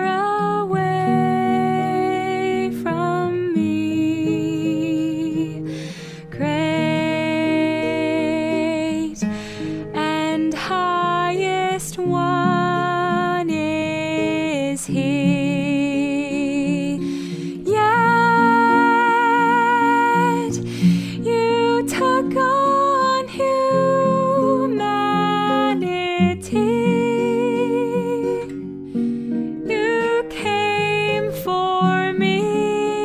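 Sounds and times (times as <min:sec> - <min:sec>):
acoustic guitar: 0:00.0 - 0:33.0.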